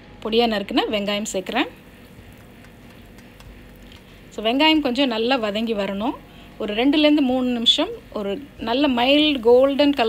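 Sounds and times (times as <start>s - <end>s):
spices sizzling in oil: 0.6s - 10.0s.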